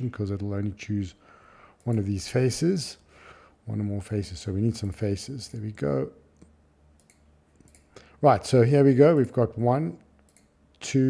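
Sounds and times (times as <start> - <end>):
steady low hum: 0.0 - 11.0
computer mouse clicks: 6.4 - 7.9, 10.2 - 10.5.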